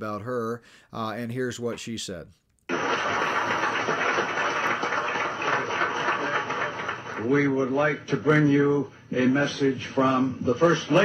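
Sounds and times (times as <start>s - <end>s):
audience applause: 2.7s - 7.7s.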